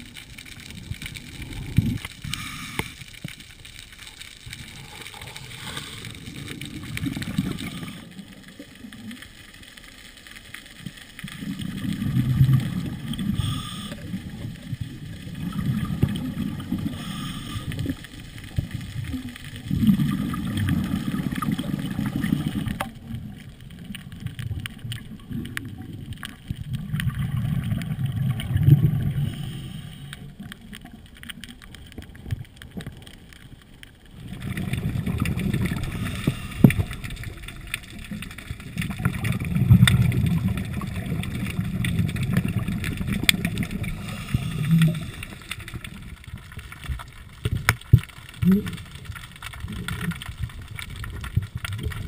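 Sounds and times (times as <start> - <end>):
muffled underwater rumbling: 0.0 - 9.9, 10.6 - 52.0.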